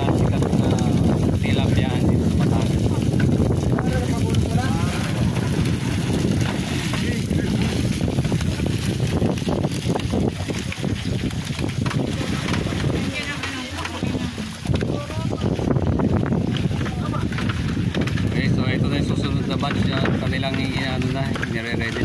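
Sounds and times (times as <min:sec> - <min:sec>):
people talking: 0:00.0 - 0:05.6, 0:06.7 - 0:07.8, 0:12.1 - 0:15.6, 0:16.7 - 0:17.6, 0:18.3 - 0:22.0
wind buffeting microphone: 0:00.0 - 0:22.0.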